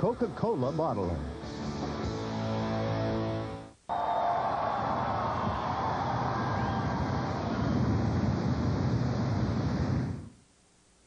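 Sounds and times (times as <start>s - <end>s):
flames roaring: 4.6s - 10.3s.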